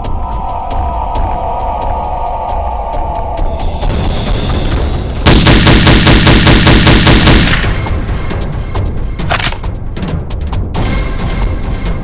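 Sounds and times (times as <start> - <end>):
automatic rifle firing: 5.3 - 7.8.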